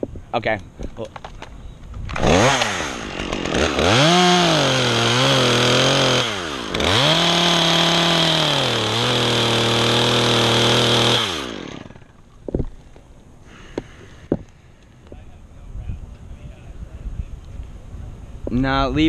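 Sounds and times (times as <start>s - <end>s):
chainsaw cutting wood: 2.1s - 12.8s.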